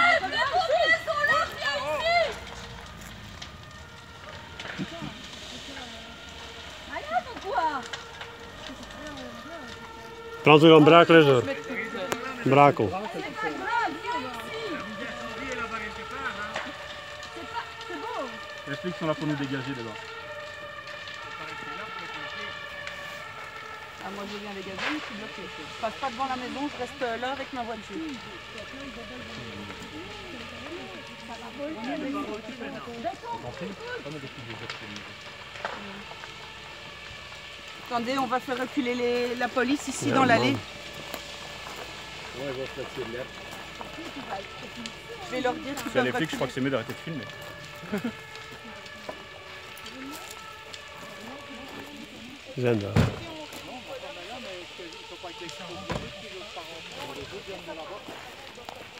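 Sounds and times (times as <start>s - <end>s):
faint voices murmuring: 0.0s - 58.9s
fire crackling: 0.0s - 58.9s
fire popping: 0.0s - 58.9s.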